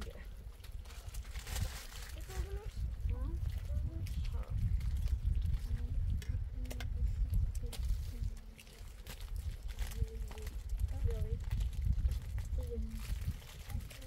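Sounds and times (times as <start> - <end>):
wind rumble on microphone: 0.0 - 14.0.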